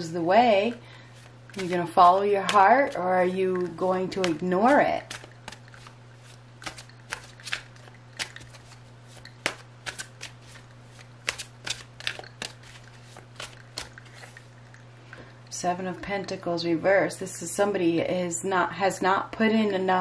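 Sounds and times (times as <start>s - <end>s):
cards being shuffled: 1.2s - 3.0s, 3.6s - 14.4s.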